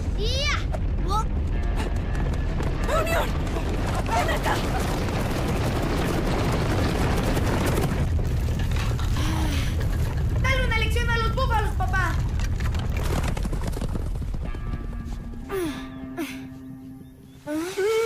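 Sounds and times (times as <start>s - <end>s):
stampeding hooves rumble: 0.0s - 15.5s.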